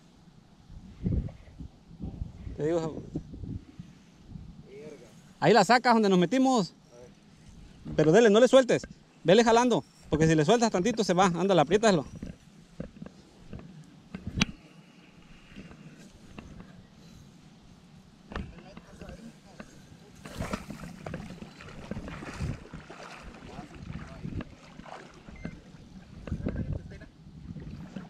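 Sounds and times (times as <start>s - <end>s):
water splashing and dripping: 20.3s - 25.6s.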